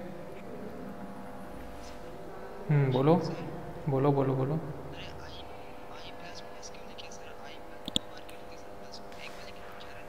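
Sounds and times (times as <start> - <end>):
low hum: 0.0 - 9.0.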